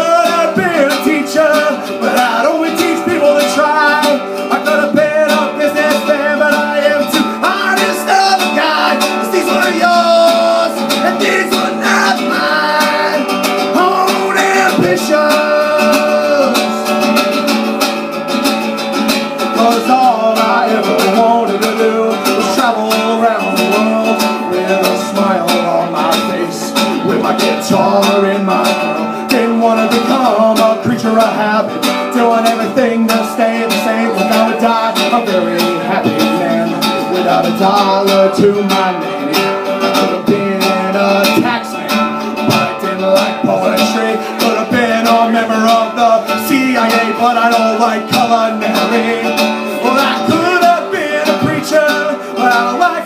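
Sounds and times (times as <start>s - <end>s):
man singing: 0.0s - 53.0s
strummed acoustic guitar: 0.0s - 53.0s.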